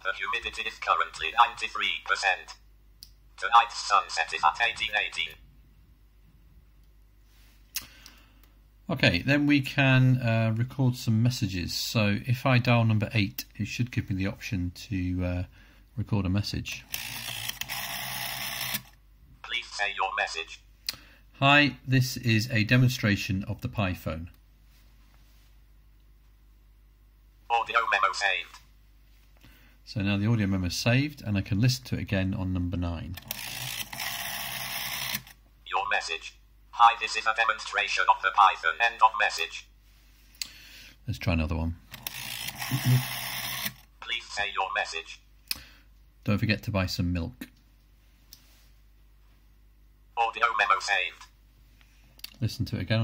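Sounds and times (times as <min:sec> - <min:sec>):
man speaking: 0:00.0 - 0:02.6, 0:03.4 - 0:05.4, 0:08.9 - 0:16.8, 0:19.4 - 0:20.7, 0:21.4 - 0:24.3, 0:27.5 - 0:28.6, 0:35.7 - 0:39.7, 0:44.0 - 0:45.3, 0:50.2 - 0:51.3, 0:52.4 - 0:53.0
rotary telephone dial whirring: 0:16.9 - 0:19.0, 0:33.2 - 0:35.4, 0:41.9 - 0:43.9.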